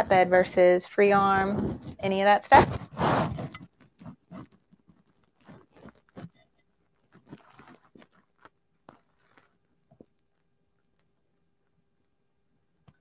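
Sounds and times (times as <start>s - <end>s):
fabric rustling: 1.5s - 10.4s.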